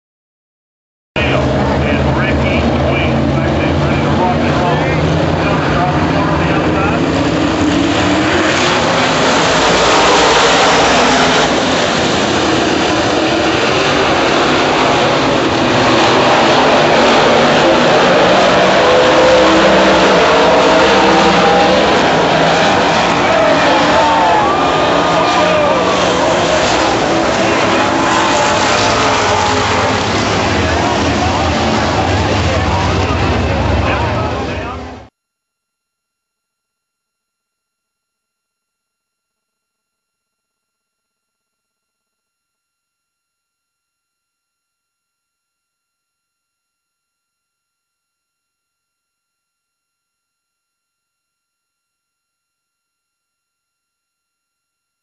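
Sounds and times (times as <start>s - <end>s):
race car engines roaring: 1.2s - 35.1s.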